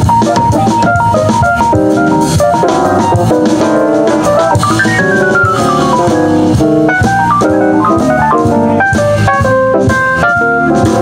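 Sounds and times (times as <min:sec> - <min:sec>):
jazz organ keyboard solo: 0:00.0 - 0:11.0.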